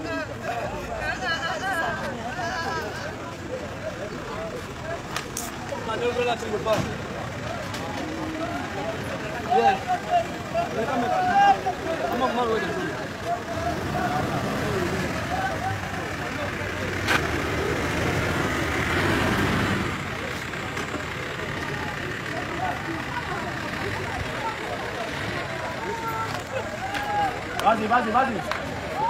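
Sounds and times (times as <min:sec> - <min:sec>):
ambulance engine running: 0:00.0 - 0:29.0
people's voices: 0:00.0 - 0:29.0.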